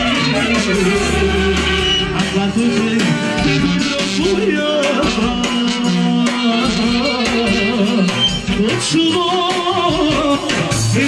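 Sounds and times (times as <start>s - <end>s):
live band music: 0.0s - 11.0s
man singing into a microphone: 0.0s - 11.0s
trumpet: 0.0s - 11.0s.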